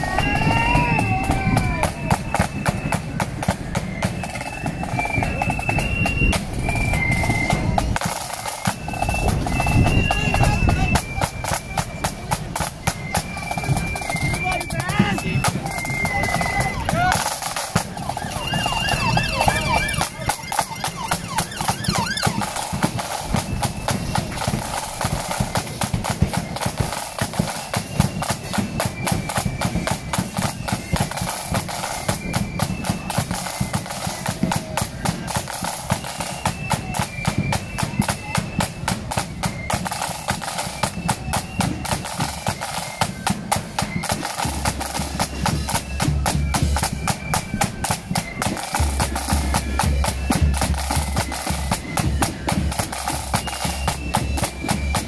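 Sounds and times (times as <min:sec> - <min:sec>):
faint flute melody: 0:00.0 - 0:55.0
snare drums rolling: 0:00.0 - 0:55.0.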